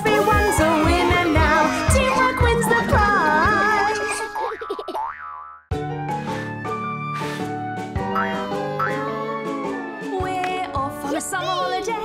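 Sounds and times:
cartoon music: 0:08.0 - 0:10.3.

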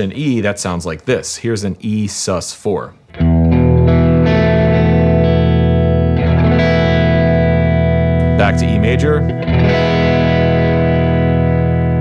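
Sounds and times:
electric guitar chord ringing: 0:03.1 - 0:12.0.

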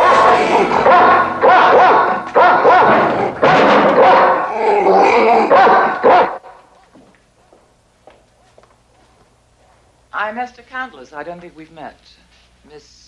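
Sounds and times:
dog barking loudly: 0:00.0 - 0:06.5.

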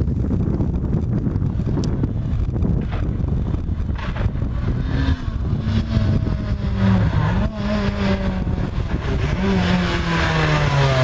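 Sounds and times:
rally car engine at high revs: 0:03.9 - 0:11.0.

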